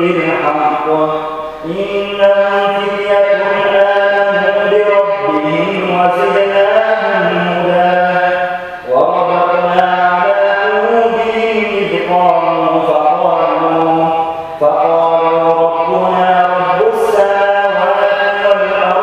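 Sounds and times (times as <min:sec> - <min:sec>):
man chanting melodically: 0:00.0 - 0:19.0.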